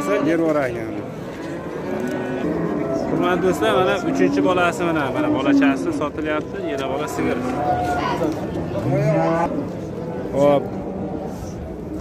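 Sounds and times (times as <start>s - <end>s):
faint murmur of people: 0.0s - 12.0s
cow mooing: 1.6s - 6.0s, 8.8s - 9.6s.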